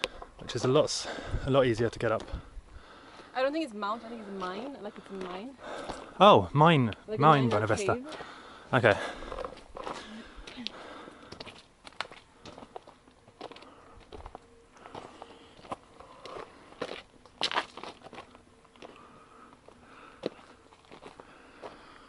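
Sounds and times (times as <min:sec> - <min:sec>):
footsteps crunching on stony trail: 0:04.2 - 0:06.2, 0:07.4 - 0:22.0.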